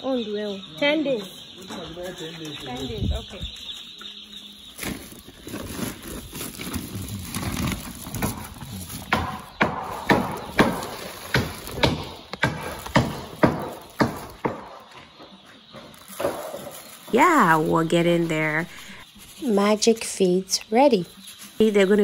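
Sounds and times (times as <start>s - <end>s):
sharp crinkles: 3.5s - 14.5s, 15.6s - 19.6s
plastic feed bag rustling: 4.7s - 14.4s, 15.6s - 19.8s.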